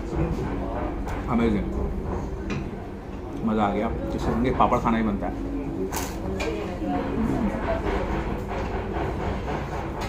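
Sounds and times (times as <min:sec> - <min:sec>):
restaurant low hum: 0:00.0 - 0:10.0.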